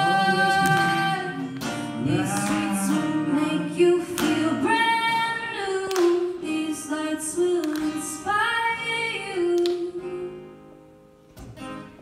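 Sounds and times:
woman singing long held notes: 0.0 - 10.5
acoustic guitar: 0.0 - 12.0.

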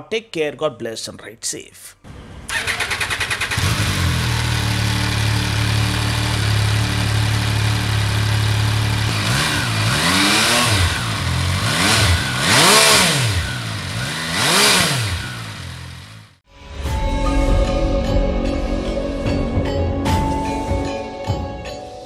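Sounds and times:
motorcycle engine idling and revving: 2.1 - 16.5.

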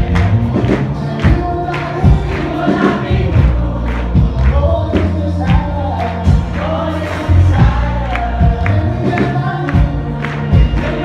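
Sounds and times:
bass guitar: 0.0 - 11.0
group singing: 0.0 - 11.0
steady drum beat: 0.0 - 11.0.

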